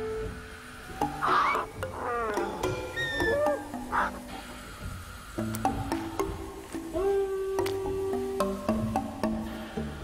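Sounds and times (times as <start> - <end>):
creature call falling in pitch: 1.2 - 4.2
high gliding chirps: 1.2 - 4.2.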